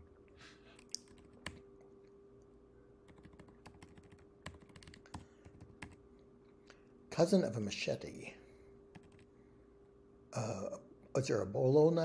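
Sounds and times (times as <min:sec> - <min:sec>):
faint steady hum: 0:00.0 - 0:12.0
keyboard keystrokes: 0:03.1 - 0:06.0.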